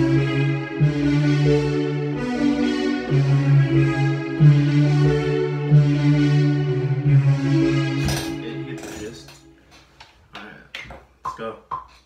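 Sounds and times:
synth melody: 0.0s - 9.7s.

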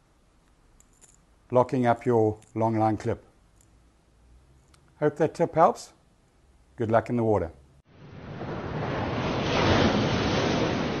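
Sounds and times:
steady rushing noise: 7.9s - 11.0s.

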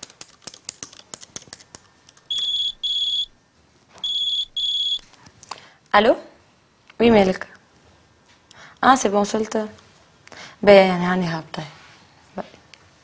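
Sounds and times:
laptop keys clicking: 0.0s - 2.7s
phone ringtone beeps: 2.3s - 3.3s, 4.0s - 5.0s.

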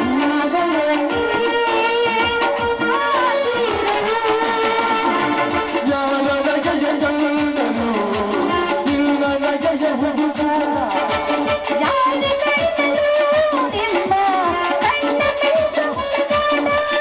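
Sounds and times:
fast steady drum beat: 0.0s - 17.0s
held keyboard melody: 0.0s - 17.0s.

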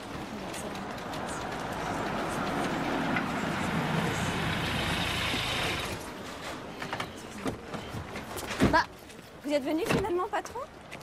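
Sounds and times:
car engine running: 3.3s - 6.0s.

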